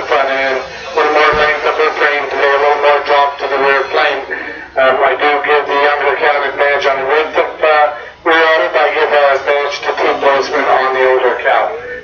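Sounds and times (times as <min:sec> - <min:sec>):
person talking: 0:00.0 - 0:12.0.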